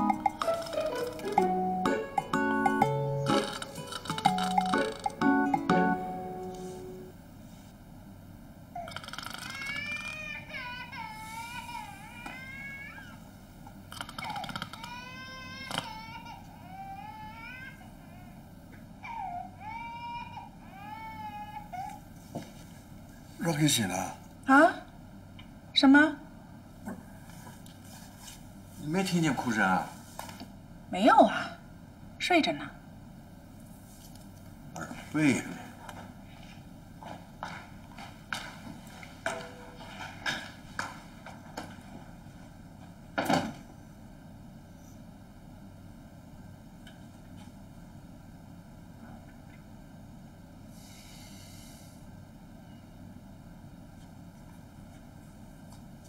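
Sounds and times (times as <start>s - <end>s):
baby crying: 8.8s - 13.2s, 14.2s - 18.4s, 19.0s - 22.0s
footsteps walking: 33.7s - 43.0s.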